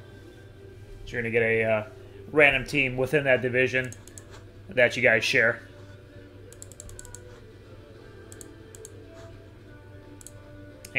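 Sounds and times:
keyboard typing: 3.8s - 4.4s, 6.5s - 7.4s, 8.3s - 9.0s.

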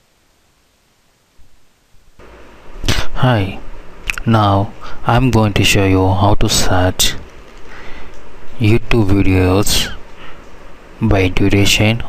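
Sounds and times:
microphone hiss: 0.0s - 12.0s
person speaking: 2.8s - 12.0s.

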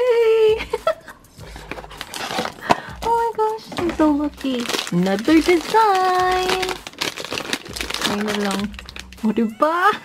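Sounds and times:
plastic wrapper crinkling: 1.4s - 9.4s.

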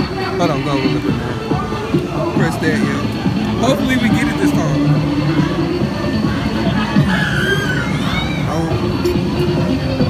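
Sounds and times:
arcade music: 0.0s - 7.0s.

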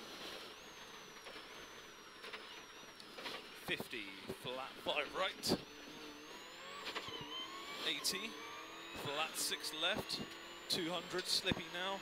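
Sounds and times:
car engine accelerating: 4.8s - 12.0s.

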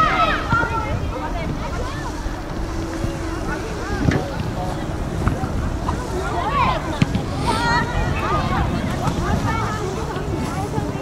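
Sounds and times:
voices calling out: 0.0s - 11.0s
wind rumbling on microphone: 0.0s - 11.0s.

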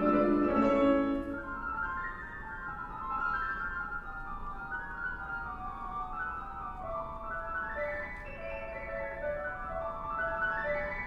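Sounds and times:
solo piano playing: 0.0s - 11.0s.

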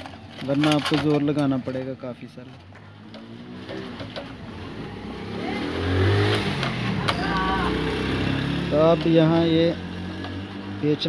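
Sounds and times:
engine accelerating: 3.0s - 11.0s.

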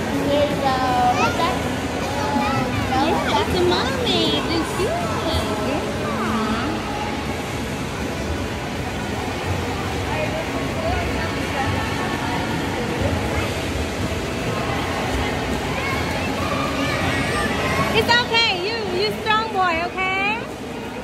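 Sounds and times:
water in a swimming pool: 0.0s - 21.0s.

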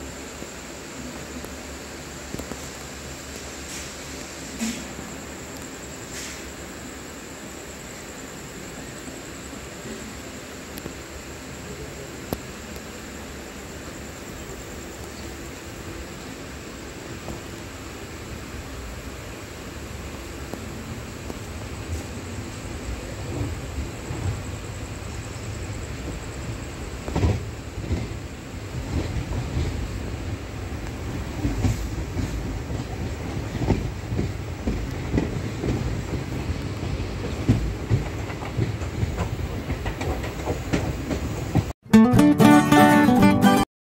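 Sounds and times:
train rumbling on rails: 0.0s - 41.8s
wheels clacking over rail joints: 27.0s - 41.7s.

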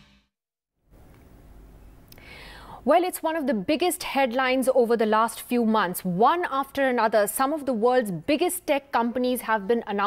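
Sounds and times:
woman breathing in: 2.1s - 2.8s
woman speaking: 2.9s - 10.0s.

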